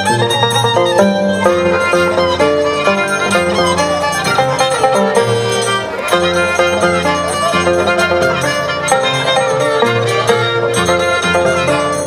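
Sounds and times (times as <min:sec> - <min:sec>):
violin and harp music: 0:00.0 - 0:12.0.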